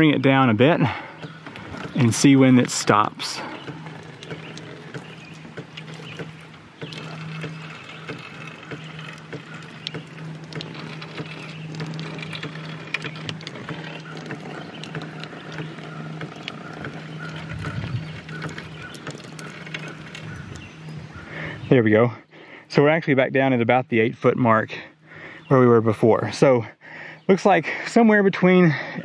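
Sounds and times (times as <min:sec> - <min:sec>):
water streaming and splashing: 0:00.0 - 0:21.5
low hum: 0:00.0 - 0:21.6.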